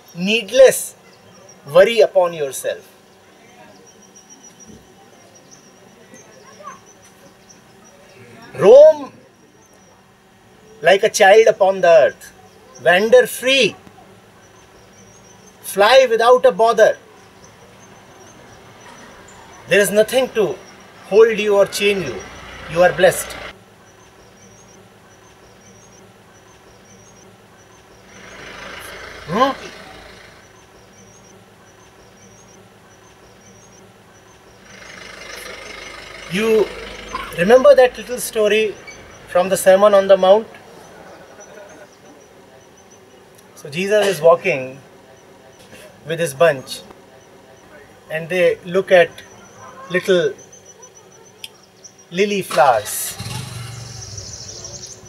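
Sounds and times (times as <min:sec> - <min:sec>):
insects chirping: 0:00.0 - 0:55.0
soft high chirps: 0:23.8 - 0:39.4.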